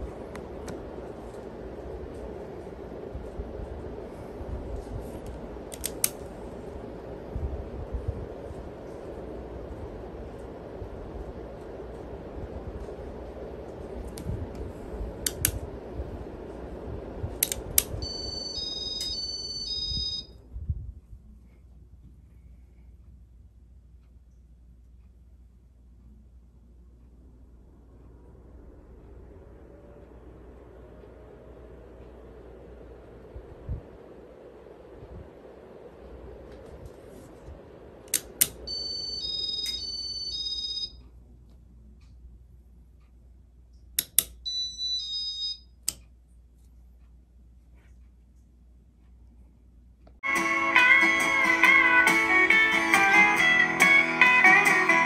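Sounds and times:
ceiling fan whooshing and humming: 0.0s - 55.0s
sharp clicks: 5.7s - 6.3s, 38.1s - 38.7s, 43.7s - 44.4s
electronic beeping tune: 18.0s - 20.3s, 38.7s - 41.0s.

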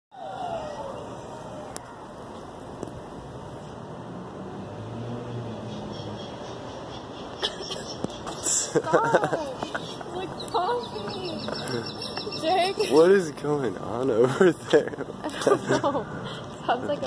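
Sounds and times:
street noise: 0.1s - 17.0s
vehicle engine hum: 0.2s - 17.0s.

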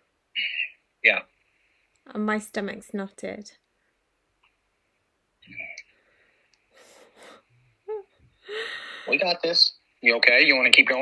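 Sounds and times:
woman breathing heavily: 6.0s - 7.5s, 8.4s - 9.2s.

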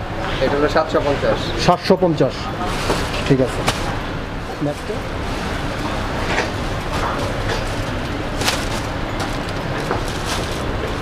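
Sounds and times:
steady rumbling background noise: 0.0s - 11.0s
cloth garment rustling: 2.7s - 4.0s, 4.6s - 11.0s.

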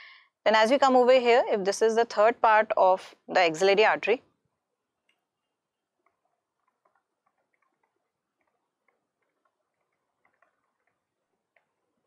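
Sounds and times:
stylus tapping on tablet screen: 6.0s - 12.0s.

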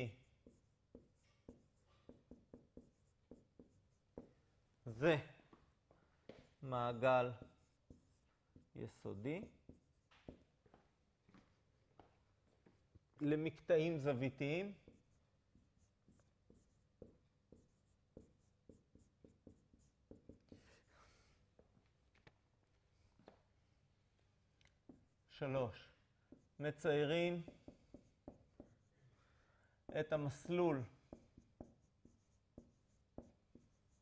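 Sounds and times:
marker writing on whiteboard: 0.0s - 4.6s, 5.3s - 21.8s, 24.7s - 29.2s, 29.8s - 34.0s.

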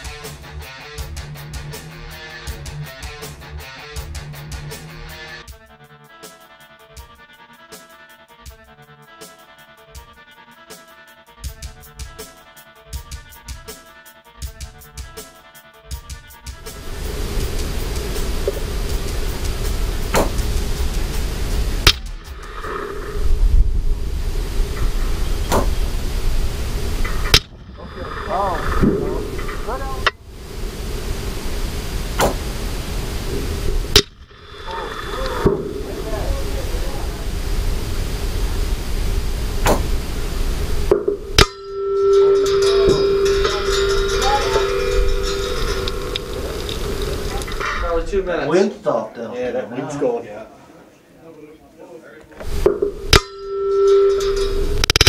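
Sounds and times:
wind buffeting microphone: 16.7s - 41.4s, 42.4s - 48.2s
people talking: 27.7s - 30.2s, 34.7s - 37.5s, 42.4s - 52.5s.

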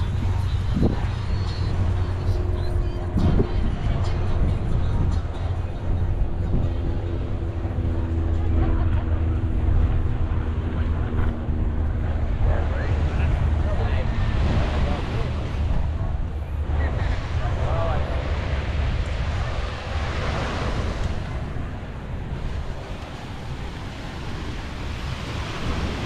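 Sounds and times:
faint voices: 0.0s - 26.0s
wind rumble on microphone: 0.0s - 26.0s.

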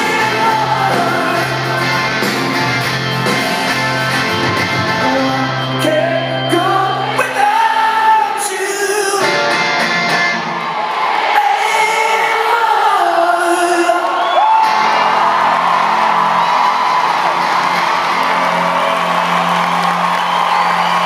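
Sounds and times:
man singing: 0.0s - 2.0s, 4.8s - 9.6s, 11.3s - 14.4s
electric guitar: 0.0s - 7.4s, 9.2s - 10.8s
crowd whooping and cheering: 0.0s - 8.4s, 9.3s - 21.0s.

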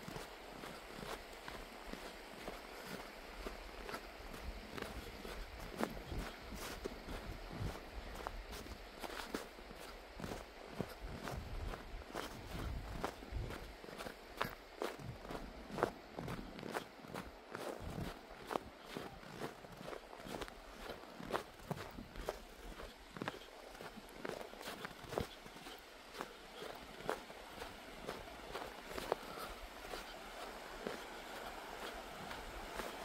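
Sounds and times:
footsteps crunching on snow: 0.0s - 33.0s.

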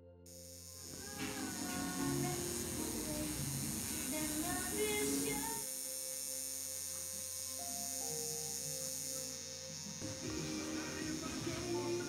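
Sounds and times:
soft background music: 0.0s - 12.0s
tattoo machine buzzing: 0.3s - 12.0s.

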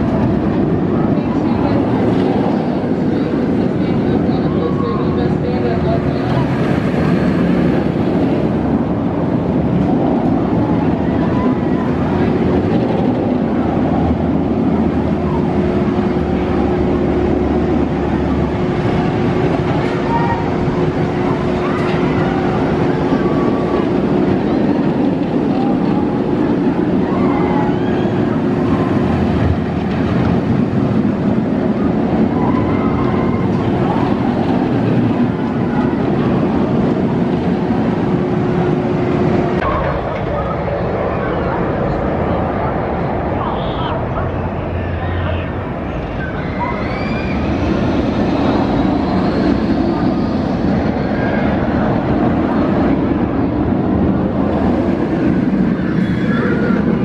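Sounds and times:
people talking: 0.0s - 57.0s
steady machine hum: 0.0s - 57.0s.

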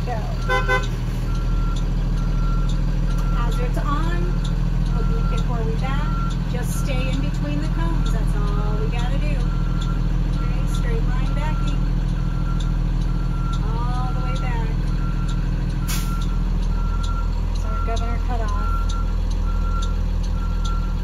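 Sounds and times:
bus engine drone: 0.0s - 21.0s
backup alarm beeping: 0.1s - 21.0s.

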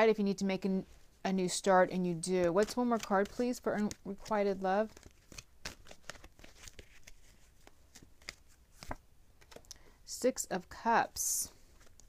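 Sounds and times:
cards shuffling: 2.4s - 9.7s.

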